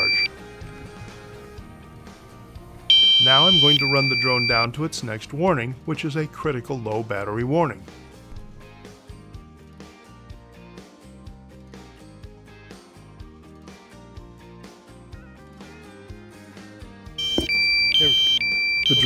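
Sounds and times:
two-pitch electronic alarm beeping: 0.0 - 0.3, 2.9 - 4.7, 17.2 - 19.0
quiet background music: 0.0 - 12.7.

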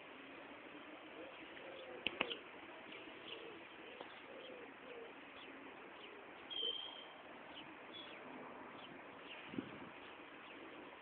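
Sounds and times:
birds cooing: 0.3 - 11.0
sharp clicks: 2.0 - 2.4
high bird chirps: 6.4 - 8.2
clear whistled bird note: 6.5 - 7.1.

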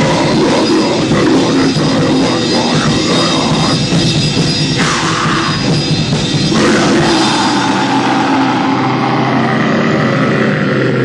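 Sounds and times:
distorted electric guitars droning: 0.0 - 11.0.

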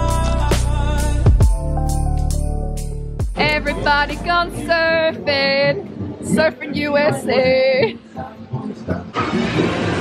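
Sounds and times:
fairground music: 0.0 - 10.0
crowd chatter: 3.4 - 10.0.

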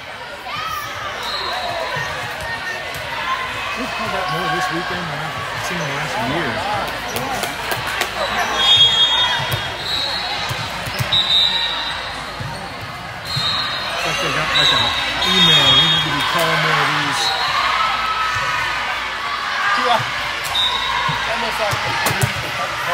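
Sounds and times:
echoing chatter of voices: 0.0 - 22.9.

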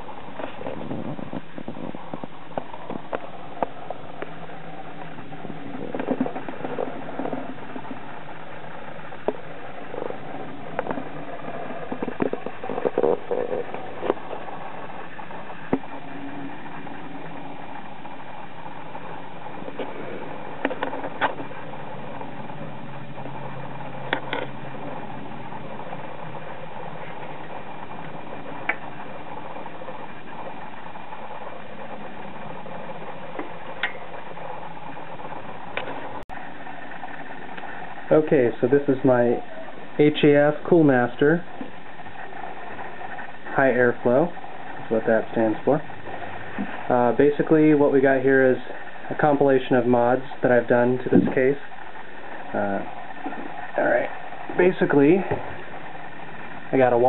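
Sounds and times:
computer fans humming: 0.0 - 57.0.

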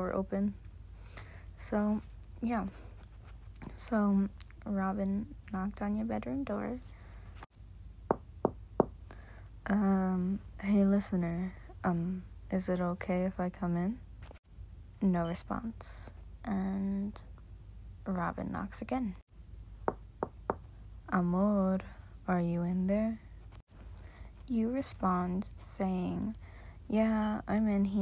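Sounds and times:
knuckles knocking on door: 8.1 - 9.0, 19.8 - 20.6.

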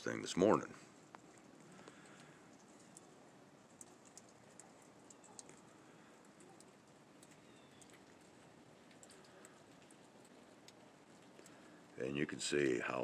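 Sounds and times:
faint outdoor ambience: 0.0 - 13.0
faint irregular ticks: 0.8 - 13.0.

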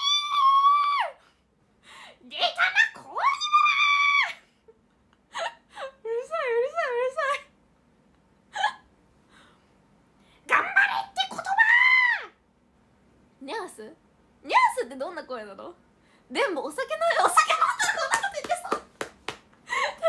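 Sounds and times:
young woman squealing: 0.0 - 1.2, 2.6 - 4.4, 11.4 - 12.4.

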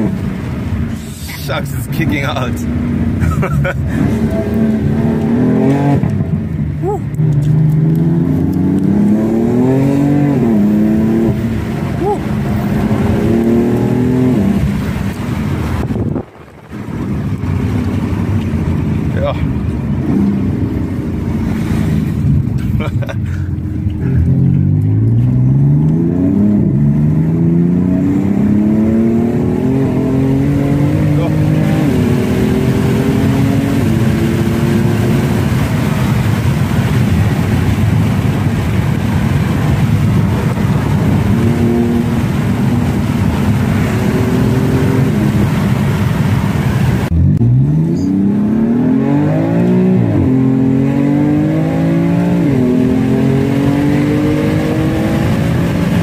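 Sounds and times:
car engine revving through gears: 0.0 - 22.7, 23.8 - 56.0.

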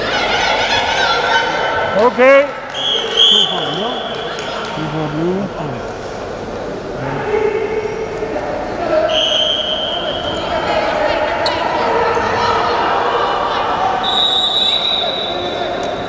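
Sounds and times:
referee's whistle: 2.7 - 4.3, 9.1 - 10.5, 14.0 - 16.0.

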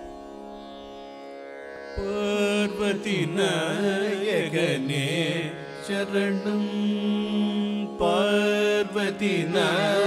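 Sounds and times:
vocal duet singing: 5.8 - 10.0.

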